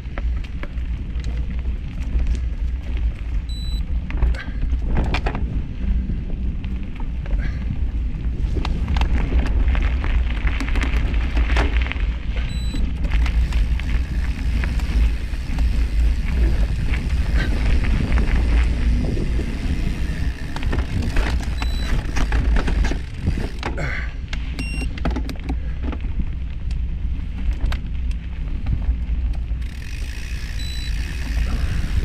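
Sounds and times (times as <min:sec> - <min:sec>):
bicycle clicks and rattles: 0:00.0 - 0:32.0
wind on microphone: 0:00.0 - 0:32.0.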